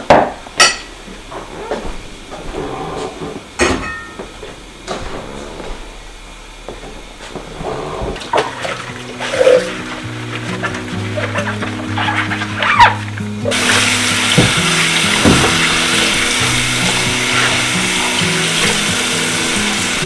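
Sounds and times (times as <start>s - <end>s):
drinking glasses clinking: 0.6s - 0.9s, 3.6s - 4.2s
water running at kitchen sink: 6.6s - 20.0s.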